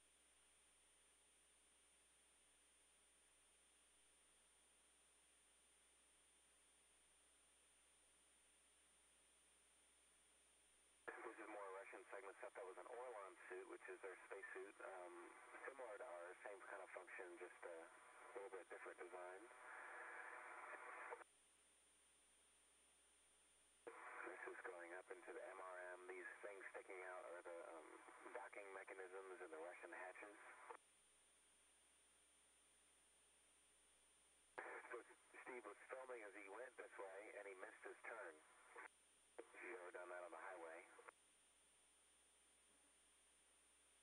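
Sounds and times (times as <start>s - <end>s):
radio static hiss: 11.1s - 21.2s, 23.9s - 30.8s, 34.6s - 41.1s.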